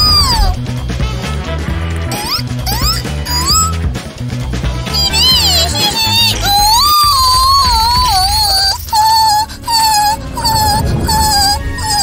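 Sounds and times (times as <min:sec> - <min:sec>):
low background music: 0:00.0 - 0:12.0
squeaky cartoon voice singing: 0:02.1 - 0:03.8, 0:04.8 - 0:12.0.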